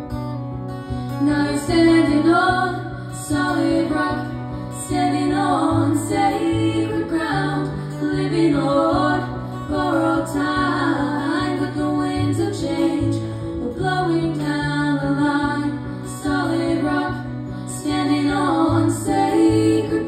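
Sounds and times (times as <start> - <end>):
strummed acoustic guitar: 0.0 - 20.0
two women singing together: 1.1 - 20.0.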